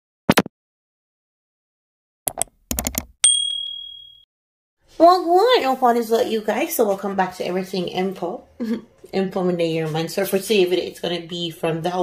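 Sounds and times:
high bell ding: 3.2 - 4.3.

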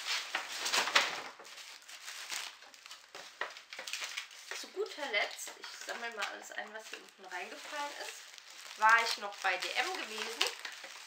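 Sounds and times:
shopping bag crinkling: 0.0 - 11.0.

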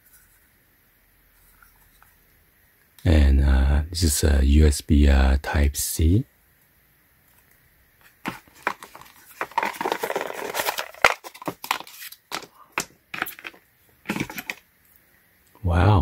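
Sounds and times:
cardboard packaging rustling: 8.0 - 14.6.

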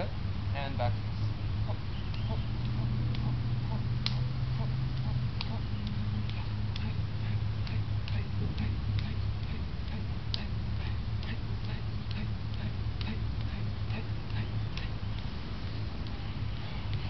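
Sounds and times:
low hum: 0.0 - 17.0
hands slapping in martial arts drill: 2.1 - 3.4, 4.0 - 16.2.

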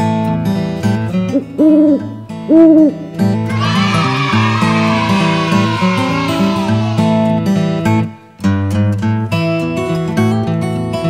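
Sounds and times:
owl hooting: 1.3 - 3.0.

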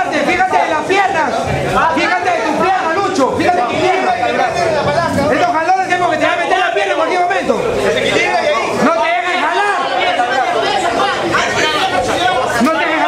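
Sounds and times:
people talking at once: 0.0 - 13.0.

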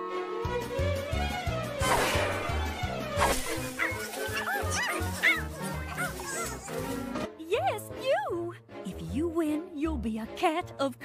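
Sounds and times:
short yelping dog-like cries: 3.7 - 6.6.

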